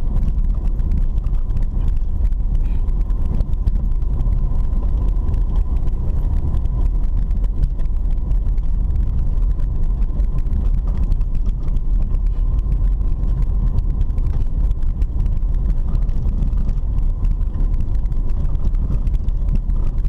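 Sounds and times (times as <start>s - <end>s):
car engine and tyres rumbling: 0.0s - 20.0s
light ticks and rattles: 0.0s - 20.0s.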